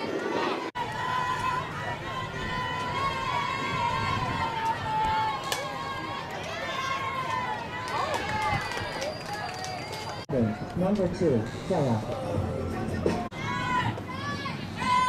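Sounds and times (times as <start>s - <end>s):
girls yelling and cheering: 13.3s - 15.0s.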